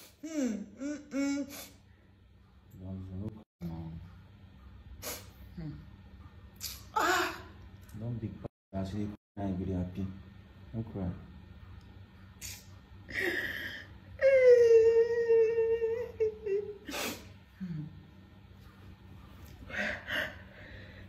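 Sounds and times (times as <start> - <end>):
woman crying: 13.1 - 17.8.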